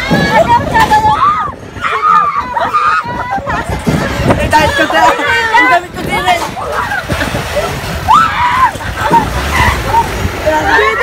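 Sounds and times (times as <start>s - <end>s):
people shouting and screaming: 0.0s - 11.0s.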